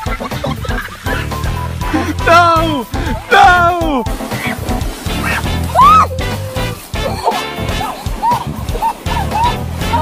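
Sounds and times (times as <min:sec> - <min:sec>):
background music: 0:00.0 - 0:10.0
woman yelping: 0:05.3 - 0:10.0.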